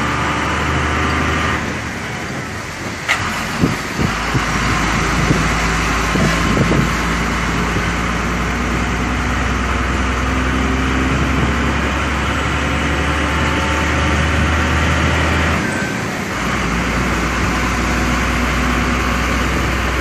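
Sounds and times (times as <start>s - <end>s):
engine drone inside vehicle cab: 0.0s - 20.0s
tyre and wind noise: 0.0s - 20.0s.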